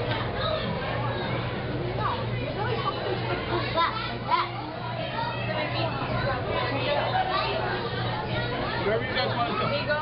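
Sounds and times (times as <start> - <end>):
children's voices: 0.0 - 9.9
indistinct chatter echoing: 0.0 - 10.0.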